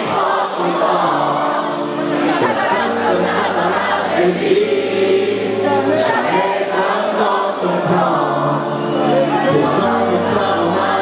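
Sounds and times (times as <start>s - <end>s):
people singing together: 0.0s - 11.0s.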